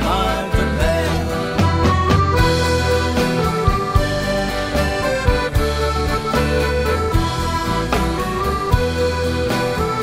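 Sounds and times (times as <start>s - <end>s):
accordion melody: 0.0s - 10.0s
guitar: 0.0s - 10.0s
steady low bass: 0.0s - 10.0s
sharp beats: 0.8s - 10.0s.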